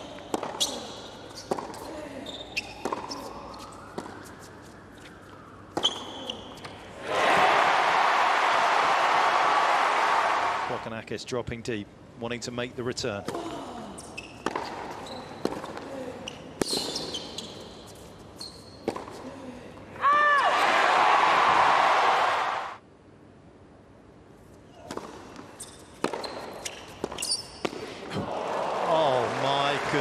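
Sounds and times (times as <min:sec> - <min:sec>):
tennis ball bouncing: 0:00.0 - 0:01.9, 0:02.6 - 0:04.3, 0:14.3 - 0:15.9, 0:18.8 - 0:19.2, 0:24.8 - 0:27.9
shoe squeaks: 0:00.6 - 0:01.6, 0:02.2 - 0:06.7, 0:14.0 - 0:15.6, 0:16.2 - 0:18.9, 0:25.5 - 0:27.7
crowd cheering and applause: 0:07.0 - 0:10.8, 0:20.4 - 0:22.8, 0:28.1 - 0:30.0
racket striking tennis ball: 0:14.4 - 0:15.8, 0:24.9 - 0:27.9.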